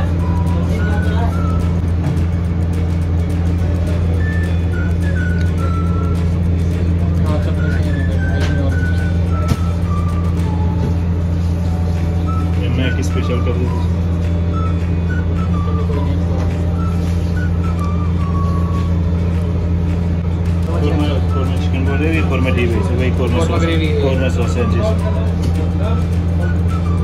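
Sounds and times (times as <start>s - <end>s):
faint music melody: 0.0s - 27.0s
loud low machine hum: 0.0s - 27.0s.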